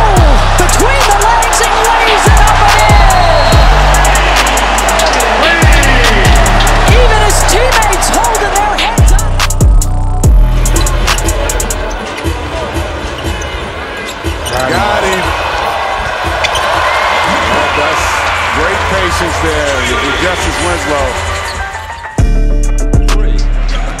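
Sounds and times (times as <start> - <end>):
music with heavy bass: 0.0 - 13.0, 22.2 - 24.0
crowd noise: 0.0 - 22.3, 23.0 - 24.0.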